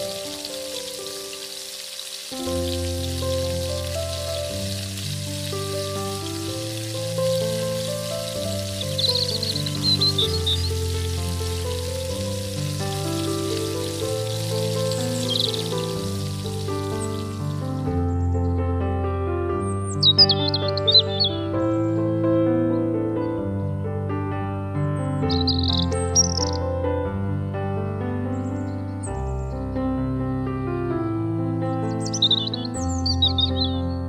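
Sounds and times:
hot oil sizzling: 0.0s - 18.1s
slow background music: 0.0s - 34.0s.

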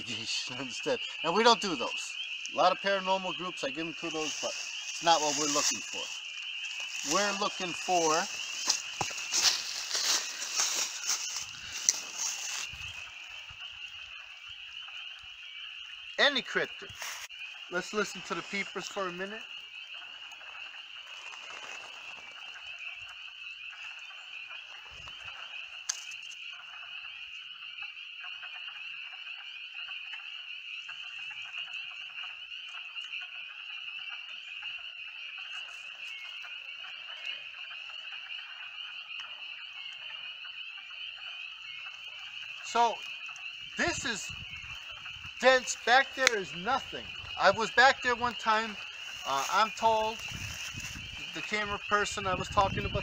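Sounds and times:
frogs peeping in chorus: 0.0s - 53.0s
dry grass crackling underfoot: 3.6s - 14.3s, 16.9s - 17.6s, 19.5s - 26.4s, 42.2s - 51.8s.

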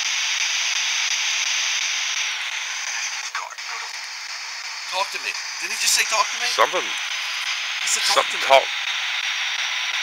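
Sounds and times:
radio static hiss: 1.8s - 10.0s
voice-like fragment: 7.9s - 8.7s.

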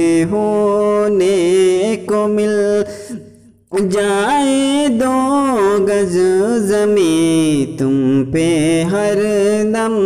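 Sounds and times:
man singing devotional chant: 0.0s - 10.0s.

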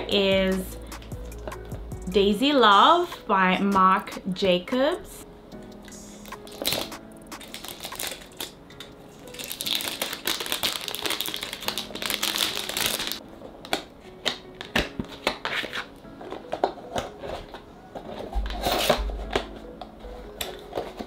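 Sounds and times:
plastic wrapping crinkling: 6.5s - 19.5s.

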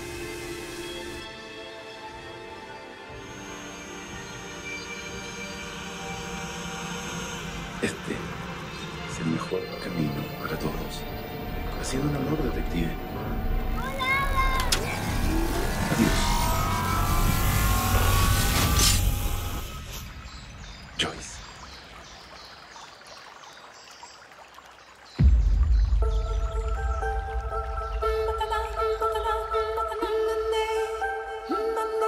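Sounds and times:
film score: 0.0s - 22.0s, 25.2s - 32.0s
rising whoosh: 10.8s - 20.2s
deep impact hit: 25.2s - 28.6s.

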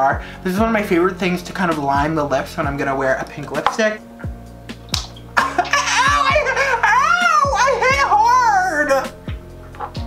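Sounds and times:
music: 0.0s - 10.0s
person laughing in a high voice: 5.4s - 8.2s.

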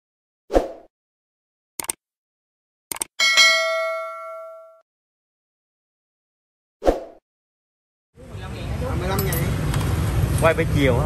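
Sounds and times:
double mouse click: 1.8s - 2.0s, 2.9s - 3.1s
bright bell ding: 3.2s - 4.8s.

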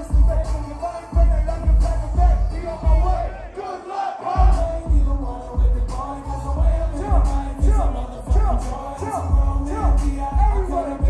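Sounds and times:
loud hip hop beat: 0.0s - 11.0s
concert crowd shouting: 2.9s - 4.8s.

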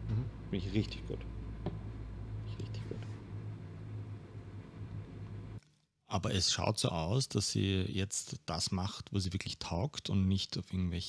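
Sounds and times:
man speaking: 0.0s - 1.2s, 6.1s - 11.0s
steady low hum: 0.0s - 5.6s.

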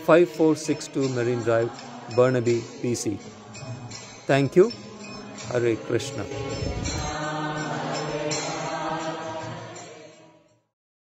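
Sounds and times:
devotional chanting music: 0.0s - 10.8s.

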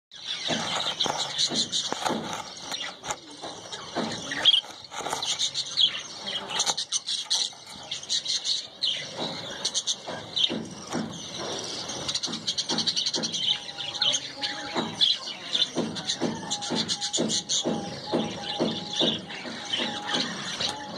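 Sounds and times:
small birds chirping: 0.1s - 20.9s.

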